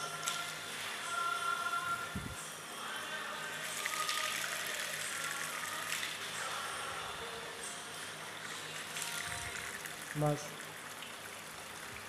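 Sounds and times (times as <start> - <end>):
water gushing over stone: 8.6 - 12.0.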